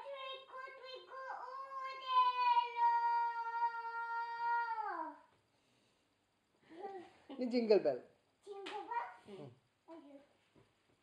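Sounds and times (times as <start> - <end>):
toddler singing long aaah: 0.0 - 5.2.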